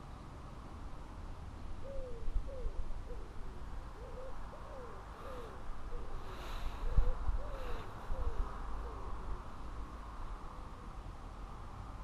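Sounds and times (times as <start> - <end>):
bird hooting calls: 1.8 - 9.4
wind on microphone: 5.6 - 9.5.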